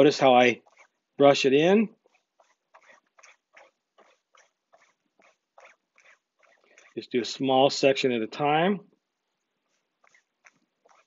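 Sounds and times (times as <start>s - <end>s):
brush scrubbing fabric: 0.0s - 1.4s, 2.0s - 7.1s, 9.6s - 11.0s.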